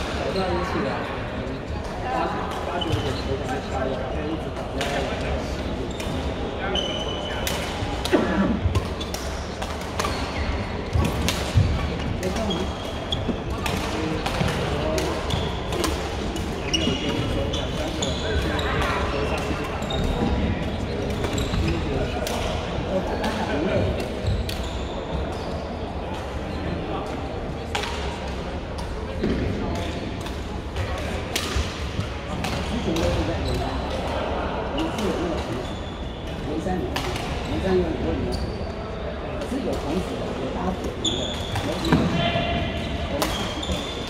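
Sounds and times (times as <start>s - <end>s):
rackets hitting shuttlecock: 7.4s - 20.2s, 40.8s - 44.0s.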